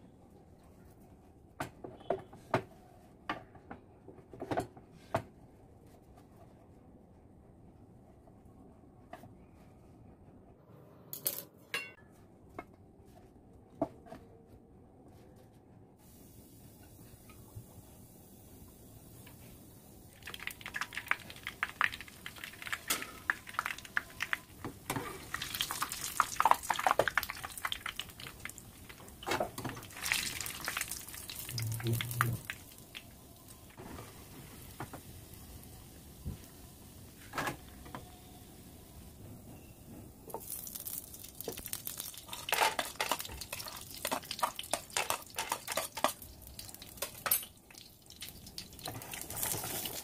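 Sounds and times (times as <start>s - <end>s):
bread deep-frying in oil: 16.0s - 37.2s, 40.3s - 50.0s
nuts dropping into a pan: 40.4s - 47.4s.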